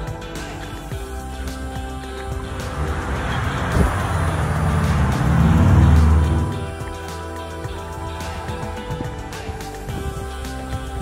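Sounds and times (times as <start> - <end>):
background music: 0.0 - 11.0
motor vehicle passing: 2.2 - 6.9.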